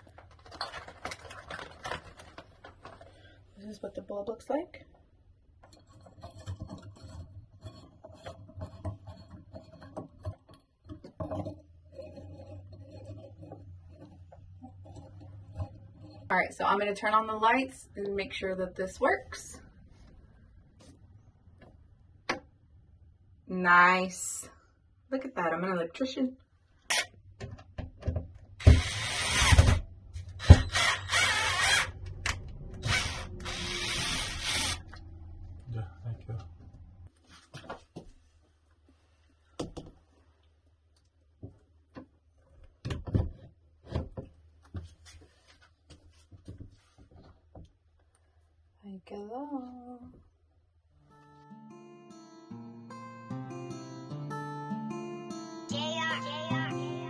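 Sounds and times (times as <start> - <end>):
cordless drill drilling into wall: 28.6 - 29.8, 30.4 - 35.0.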